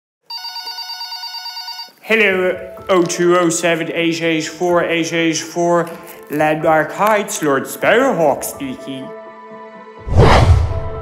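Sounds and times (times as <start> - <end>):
telephone ringing: 0.3 - 2.0.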